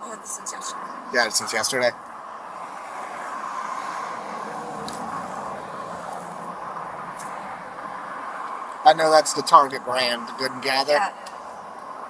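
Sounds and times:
vehicle noise rushing: 0.0s - 12.0s.

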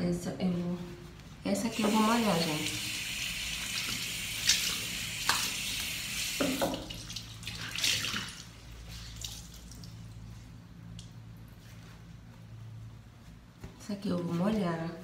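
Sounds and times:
tap running into sink: 6.3s - 7.0s
water splashes: 6.5s - 10.1s
wet handling sounds: 7.0s - 12.0s.

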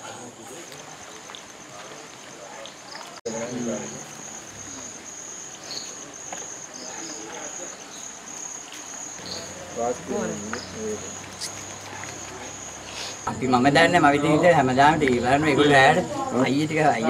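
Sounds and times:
low voices talking: 0.0s - 17.0s
night insects chirring: 0.0s - 17.0s.

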